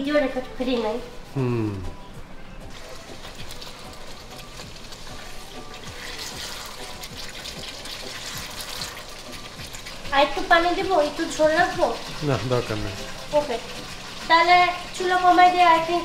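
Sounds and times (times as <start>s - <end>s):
curry sizzling and bubbling: 0.0s - 16.0s
spatula stirring in pot: 2.7s - 16.0s.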